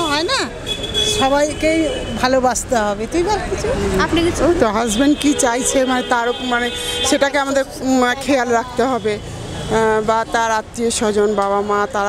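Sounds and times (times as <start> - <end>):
street market noise: 0.0 - 12.0
traffic engine rumble: 0.0 - 12.0
woman speaking into a microphone: 1.2 - 12.0.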